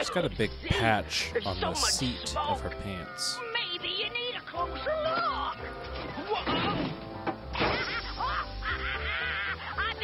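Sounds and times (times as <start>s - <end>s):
background music: 0.0s - 10.0s
cartoon character warbling laugh: 7.7s - 10.0s.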